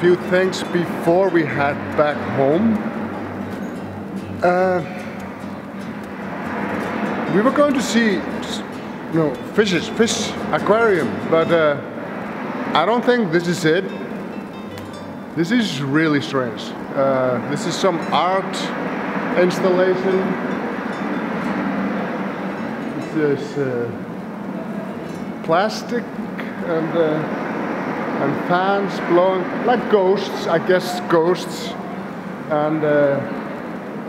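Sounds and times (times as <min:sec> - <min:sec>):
fans rushing air: 0:00.0 - 0:34.0.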